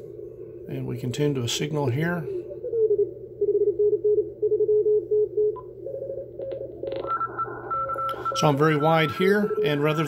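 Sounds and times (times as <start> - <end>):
morse code tones: 2.7 - 10.0
higher-pitched morse code signal: 5.9 - 10.0
radio hiss: 7.3 - 10.0.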